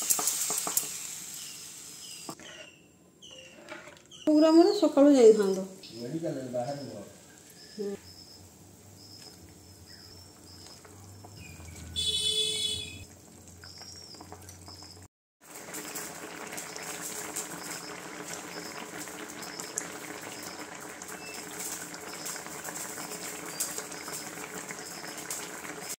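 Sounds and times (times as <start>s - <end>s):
gravy bubbling in a pan: 6.5s - 26.0s.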